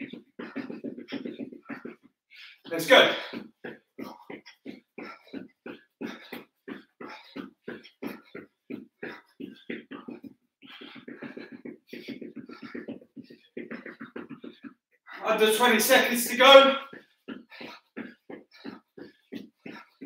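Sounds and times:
man breathing hard: 0.0 - 20.0.

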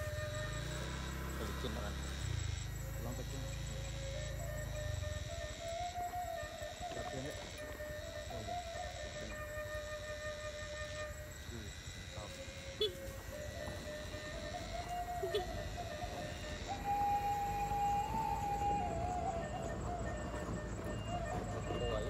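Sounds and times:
diesel engine rumble: 0.0 - 9.1, 12.0 - 22.0
high-pitched hydraulic whine: 0.0 - 22.0.

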